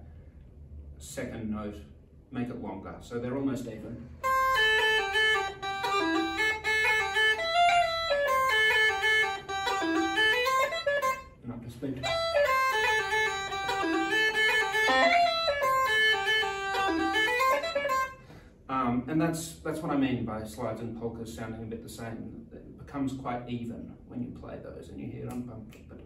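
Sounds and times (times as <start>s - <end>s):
uilleann pipes playing: 4.2s - 11.4s, 12.0s - 18.3s.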